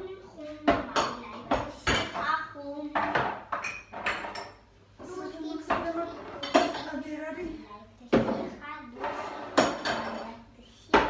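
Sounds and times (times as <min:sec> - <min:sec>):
pots and pans clattering: 0:00.6 - 0:07.0, 0:08.1 - 0:11.0.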